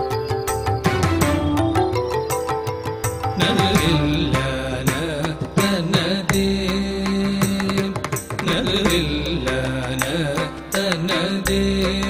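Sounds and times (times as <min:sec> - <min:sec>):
ornamented melody line: 0:00.0 - 0:05.5
percussion strokes: 0:00.0 - 0:12.0.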